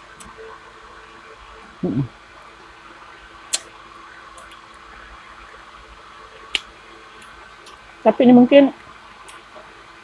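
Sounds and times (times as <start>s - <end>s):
desk fan humming: 0.0s - 10.0s.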